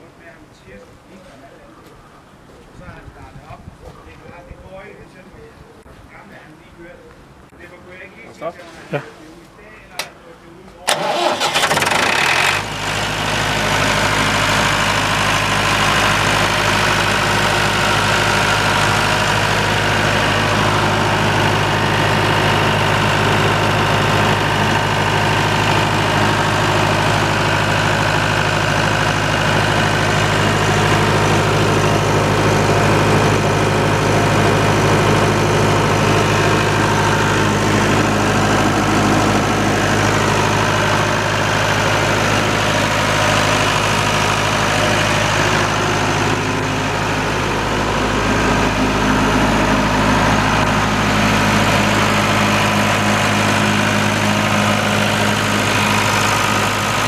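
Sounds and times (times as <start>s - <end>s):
diesel generator running: 10.8s - 57.0s
electric starter cranking: 10.9s - 13.1s.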